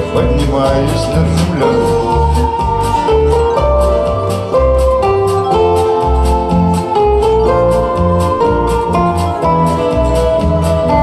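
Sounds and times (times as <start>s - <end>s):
acoustic guitar strumming: 0.0s - 11.0s
sustained melody line: 0.0s - 11.0s.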